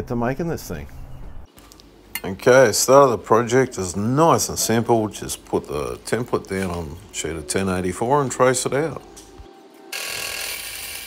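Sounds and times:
bandsaw cutting steel: 9.9s - 11.0s.

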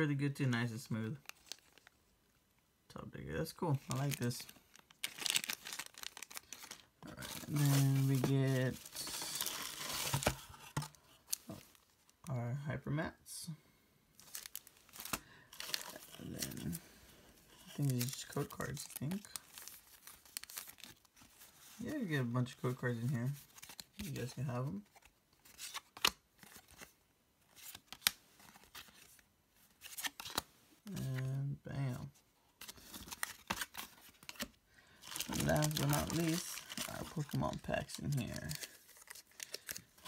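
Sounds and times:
paper shred rustling: 3.9s - 11.6s, 35.1s - 39.8s.

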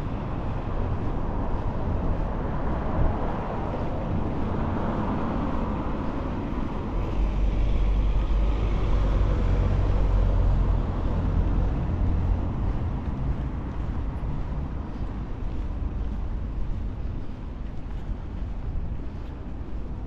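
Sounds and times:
hum of city traffic: 0.0s - 20.0s
vehicle passing with low rumble: 0.0s - 20.0s.

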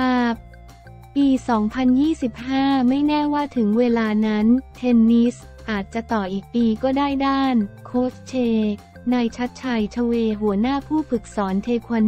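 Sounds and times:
quiet steady background music: 0.0s - 12.0s.

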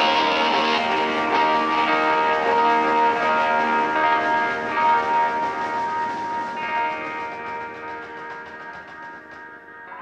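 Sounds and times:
electric guitar bell-like drone: 0.0s - 10.0s
high guitar feedback note: 0.0s - 10.0s.

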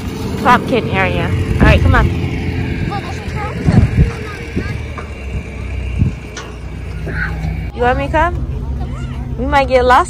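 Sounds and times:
wind rumbling on microphone: 0.0s - 7.7s.

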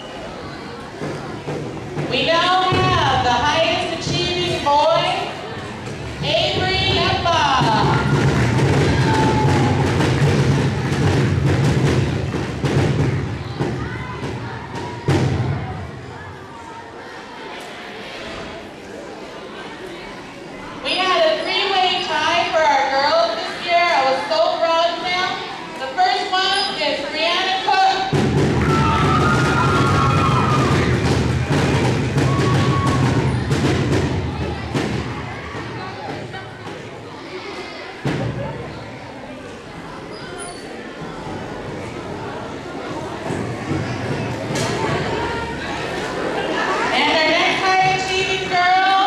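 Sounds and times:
audience clapping and cheering: 7.8s - 11.5s, 28.4s - 33.3s
people shouting: 7.9s - 10.1s, 28.5s - 33.5s.

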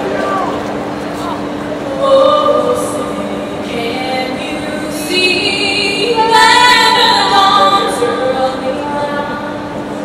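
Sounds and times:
echoing public address voice: 0.0s - 9.8s
steady low hum: 0.0s - 10.0s.

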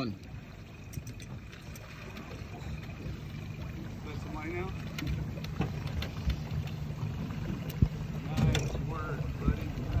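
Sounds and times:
outboard motor idling: 0.0s - 10.0s.

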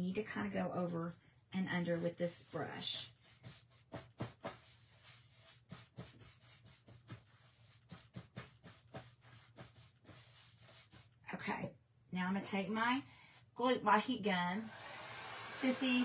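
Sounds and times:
paintbrush strokes on ridged surface: 0.2s - 11.2s.

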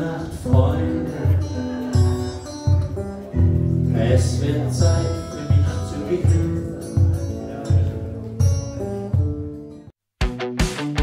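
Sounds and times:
held guitar notes: 0.0s - 11.0s.

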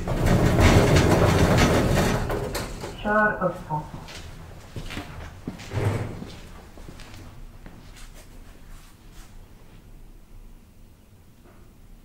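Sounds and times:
elevator doors rumbling open: 0.0s - 3.9s, 5.2s - 6.8s.

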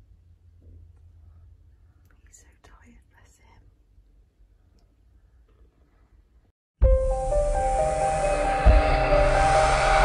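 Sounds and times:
low steady hum: 0.0s - 5.4s
person whispering softly: 2.0s - 3.8s.

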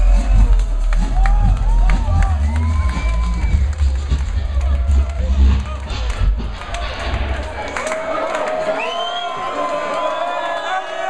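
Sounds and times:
drum and bass music: 0.0s - 8.1s
crowd cheering and shouting: 0.0s - 11.0s.

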